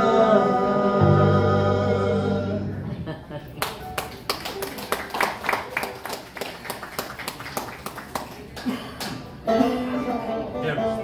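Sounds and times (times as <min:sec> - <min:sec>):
small audience applauding: 0:03.6 - 0:09.4.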